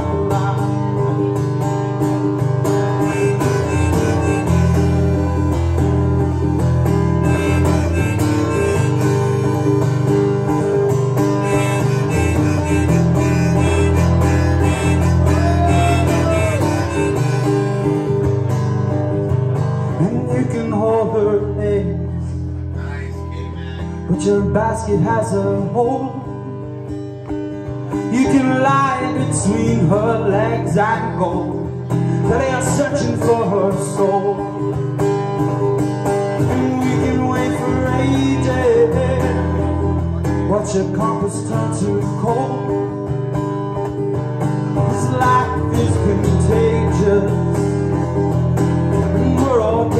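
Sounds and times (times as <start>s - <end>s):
acoustic guitar strumming: 0.0s - 49.9s
harmonica playing: 2.7s - 5.6s, 6.9s - 18.3s.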